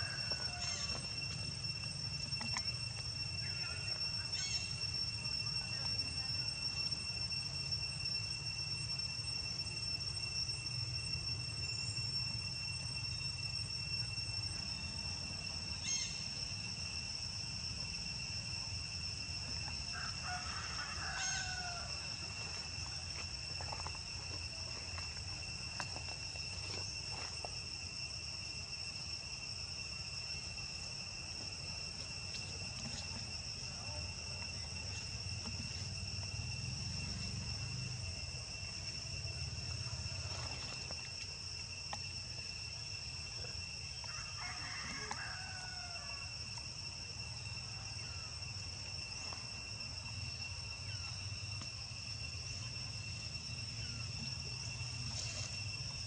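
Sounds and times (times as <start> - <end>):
rooster crowing: 0.0 - 1.2, 19.8 - 22.4, 44.0 - 46.4
high-pitched insect drone: 0.0 - 56.0.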